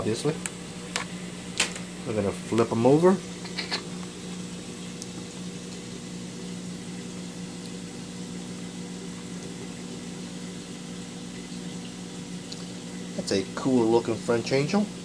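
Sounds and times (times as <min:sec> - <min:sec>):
aquarium pump motor hum: 0:00.0 - 0:15.0
circulating water: 0:00.0 - 0:15.0.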